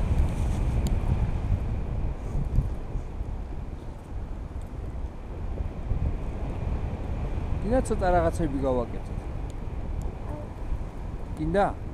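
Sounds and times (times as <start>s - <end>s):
wind rushing over microphone: 0.0s - 11.9s.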